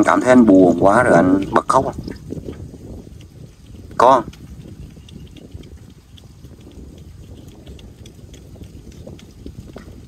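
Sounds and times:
wind buffeting microphone: 0.0s - 10.0s
faint ticks: 1.4s - 10.0s.

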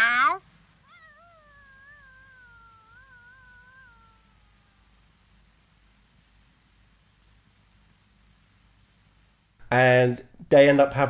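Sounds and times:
person imitating cat caterwaul: 0.0s - 5.0s.

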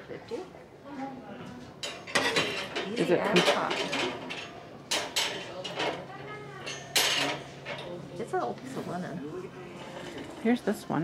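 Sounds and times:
dishes clattering on wooden shelf: 1.8s - 6.0s, 6.7s - 7.9s.

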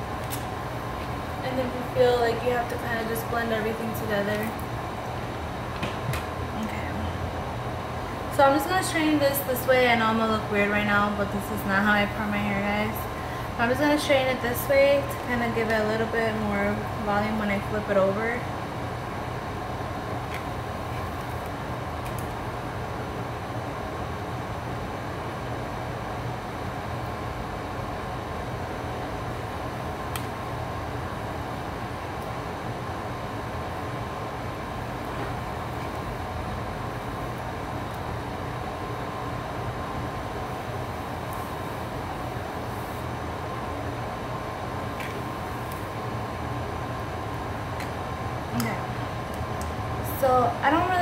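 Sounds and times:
air conditioner humming: 0.0s - 51.0s.

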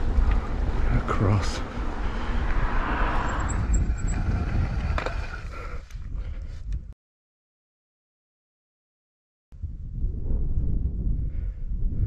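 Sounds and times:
bike clicks: 0.0s - 0.8s, 2.0s - 6.8s
bike tyres rolling on tarmac: 0.0s - 6.6s
wind on microphone: 1.6s - 7.0s, 9.6s - 12.0s.

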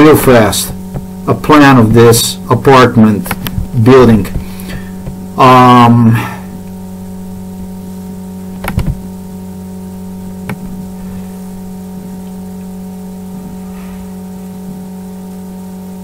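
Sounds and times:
mains hum: 0.0s - 16.0s.

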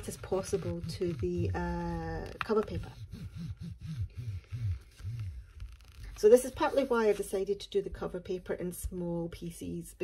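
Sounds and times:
bone folder rubbing paper: 0.0s - 7.4s.

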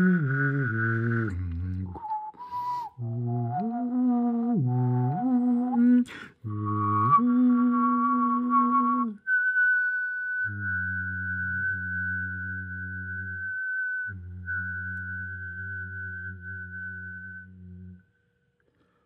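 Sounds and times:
long whistled note: 0.0s - 18.2s.

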